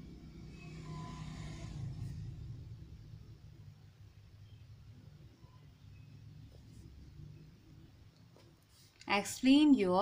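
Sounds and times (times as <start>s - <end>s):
faint low rumble: 0.0s - 8.9s.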